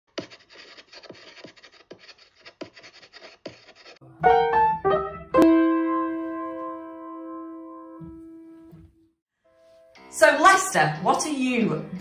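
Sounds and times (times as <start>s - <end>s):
chalk scratching on blackboard: 0.1s - 4.0s
chalk tapping: 0.1s - 4.0s.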